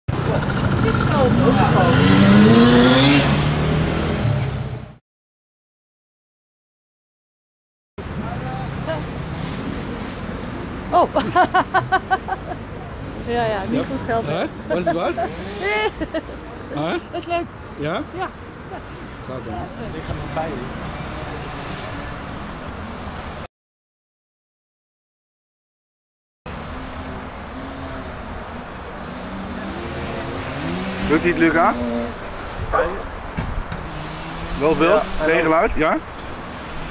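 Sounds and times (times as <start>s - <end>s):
motocross bike engines revving: 0.1s - 4.8s, 8.1s - 17.2s, 26.5s - 36.9s.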